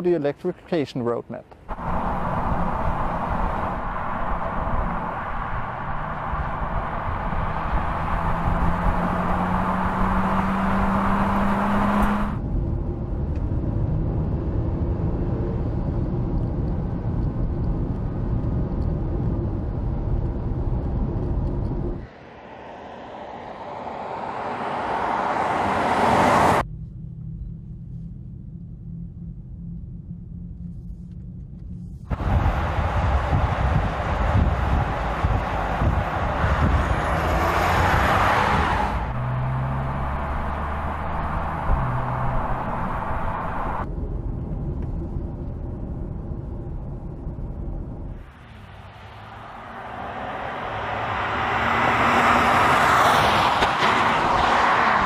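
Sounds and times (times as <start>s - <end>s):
car driving road rumble: 1.4s - 55.0s
low rumble: 1.6s - 10.8s, 26.6s - 51.1s
car approaching with rising rush: 1.6s - 28.0s, 31.9s - 55.0s.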